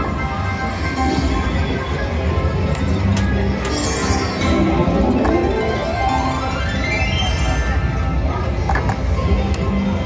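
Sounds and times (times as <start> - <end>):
slot machine music and chimes: 0.0 - 10.0.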